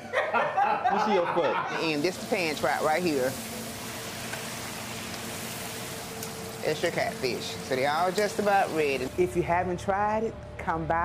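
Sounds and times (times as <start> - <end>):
hot oil sizzling: 0.6 - 9.6.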